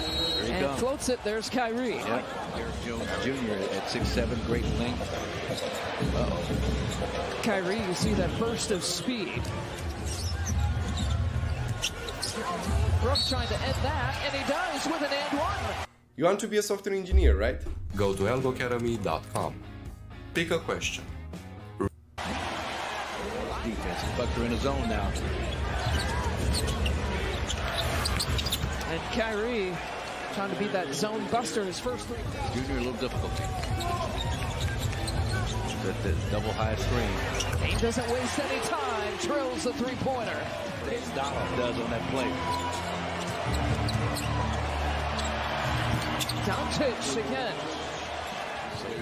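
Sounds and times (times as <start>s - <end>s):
arena crowd noise: 0.0s - 15.9s, 22.2s - 49.0s.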